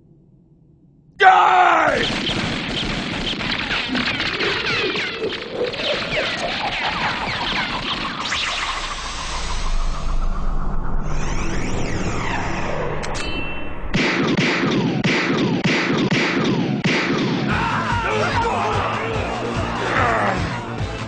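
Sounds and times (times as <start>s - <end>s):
dramatic music: 16.6s - 21.0s.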